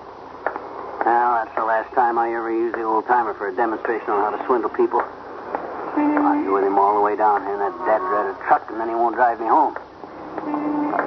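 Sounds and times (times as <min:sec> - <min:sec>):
man talking on old radio: 0:01.0 - 0:05.1, 0:06.2 - 0:09.8.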